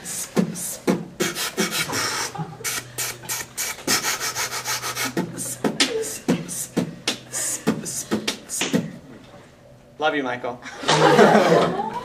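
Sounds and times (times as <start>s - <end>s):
beatboxing: 0.0s - 9.1s.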